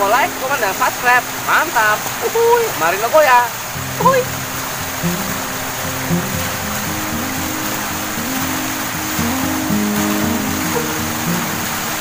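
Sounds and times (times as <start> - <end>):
river water rushing: 0.0 - 12.0
slow melodic background music: 3.7 - 12.0.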